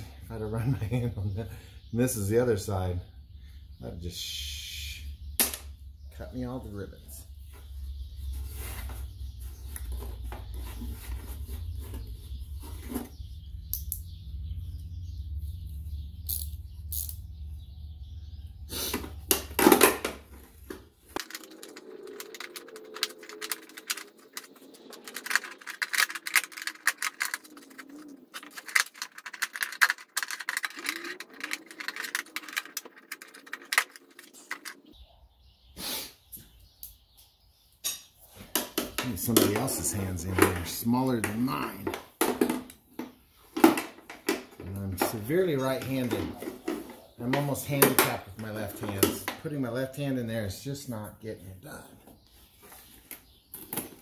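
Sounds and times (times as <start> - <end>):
clicks and metallic rattles of tools: 18.9 - 34.8.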